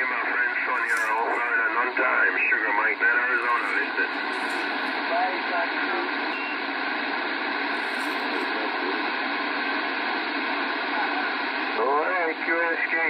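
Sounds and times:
faint radio voice: 0.0 - 6.5, 10.8 - 13.0
radio static hiss: 0.0 - 13.0.

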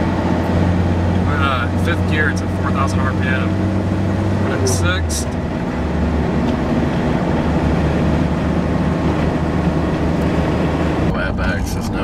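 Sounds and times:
car engine drone inside cabin: 0.0 - 12.0.

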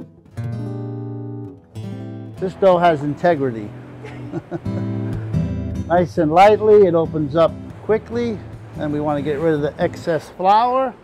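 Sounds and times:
acoustic guitar strumming: 0.0 - 10.9.

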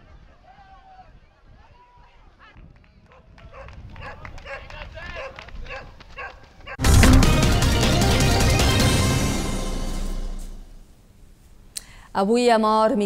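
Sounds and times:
music: 6.8 - 10.8.

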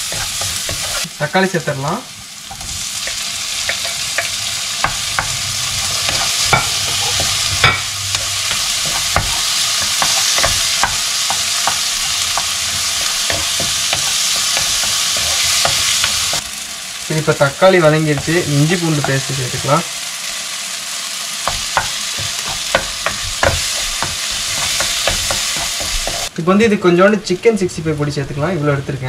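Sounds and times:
wooden spoon scraping a pan: 0.0 - 1.1, 2.5 - 16.4, 21.4 - 26.3
vegetables sizzling in hot oil: 0.0 - 26.4.

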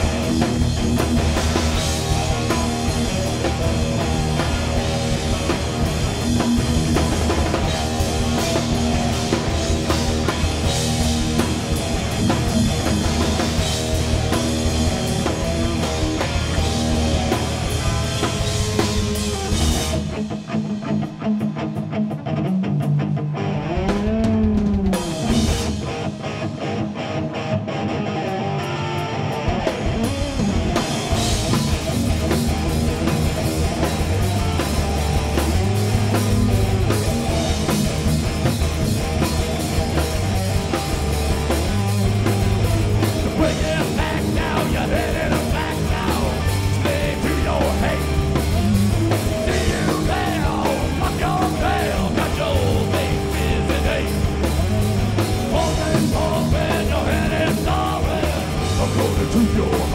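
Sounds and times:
live hard rock band: 0.0 - 59.9.

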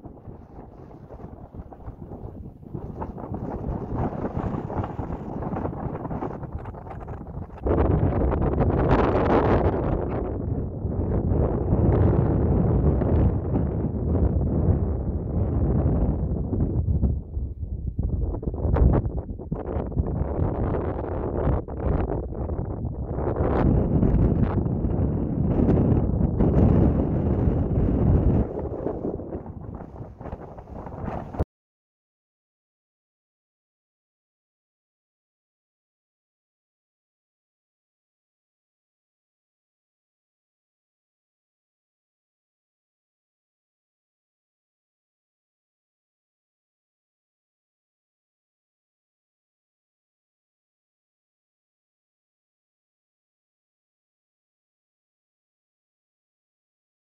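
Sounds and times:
wind buffeting microphone: 0.0 - 31.4.

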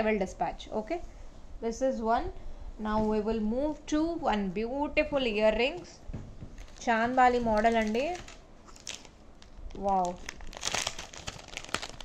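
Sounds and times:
plastic packaging crinkling: 6.6 - 12.0.

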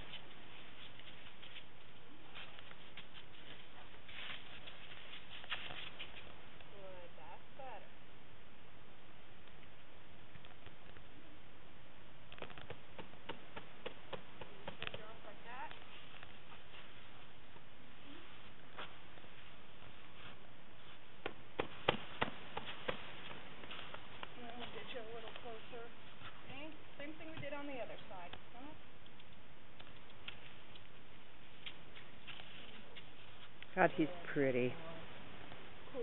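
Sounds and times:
steady background hiss: 0.0 - 36.0.

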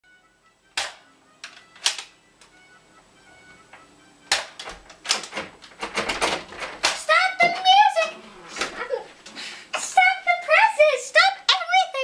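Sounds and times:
faint music: 0.0 - 12.0
toy gun clicking: 0.8 - 2.1.

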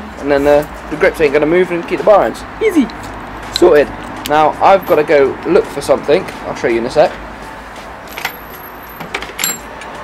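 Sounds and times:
small metal parts clinking: 8.1 - 9.8.

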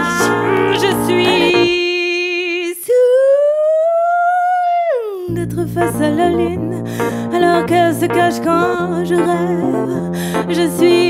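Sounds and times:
woman singing long vowel: 0.0 - 11.0.

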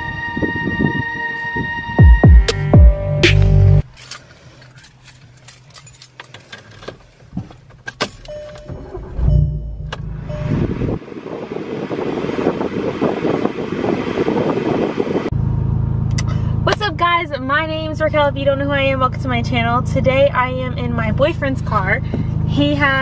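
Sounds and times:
car engine starting and running: 2.0 - 23.0
keys jangling: 3.9 - 8.6.

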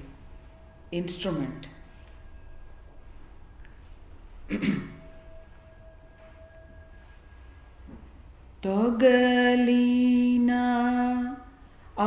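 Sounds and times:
faint steady tone: 0.0 - 12.0
person clearing throat: 4.5 - 5.0.

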